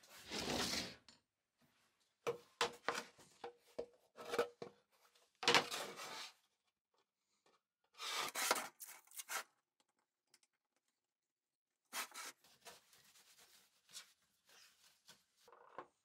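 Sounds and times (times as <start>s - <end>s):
board sliding across worktop: 0.0s - 1.0s.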